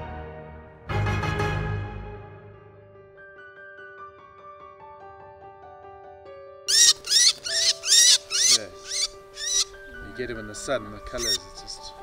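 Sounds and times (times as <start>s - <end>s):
soft piano music: 2.0s - 12.0s
songbird harsh calls: 6.7s - 12.0s.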